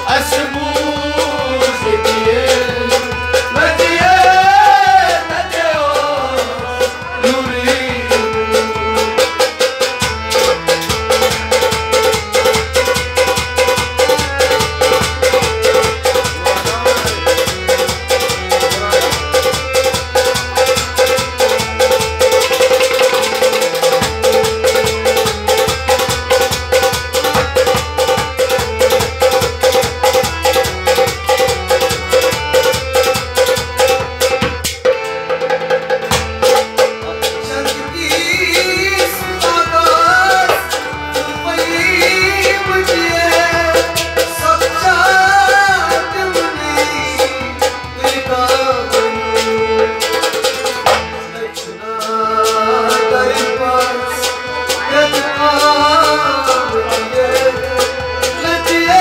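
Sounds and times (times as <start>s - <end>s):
harmonium melody: 0.0s - 59.0s
plucked strings strumming: 0.0s - 59.0s.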